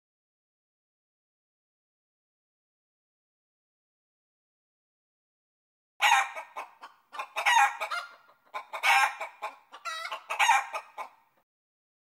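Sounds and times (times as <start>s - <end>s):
chicken clucking: 6.0s - 11.3s.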